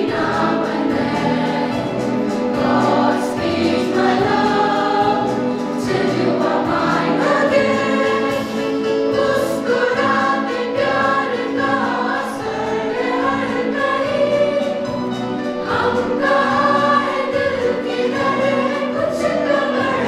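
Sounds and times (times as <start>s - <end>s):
children's choir singing: 0.0s - 20.0s.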